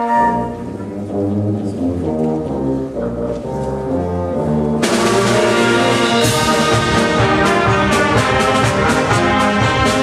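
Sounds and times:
concert band playing: 0.0 - 10.0
tuba bass line: 0.0 - 10.0.

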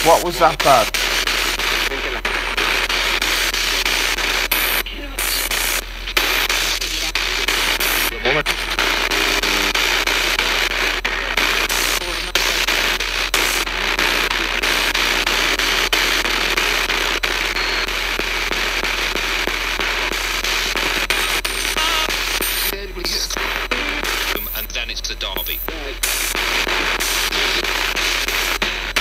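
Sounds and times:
broken radio voice snatches: 0.0 - 29.0
radio static: 0.0 - 29.0
rapid radio clicks: 0.0 - 29.0.

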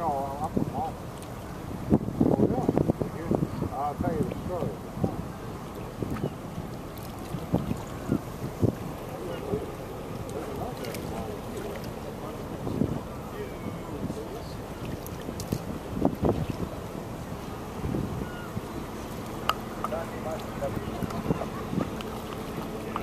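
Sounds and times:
ship engine rumble: 0.0 - 23.0
wind buffeting microphone: 0.0 - 23.0.

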